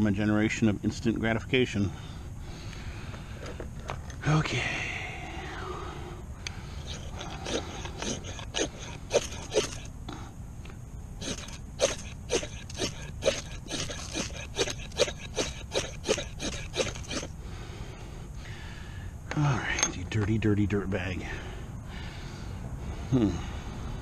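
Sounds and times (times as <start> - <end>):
metal striker scraping ferro rod: 6.8 - 9.9, 11.2 - 17.3.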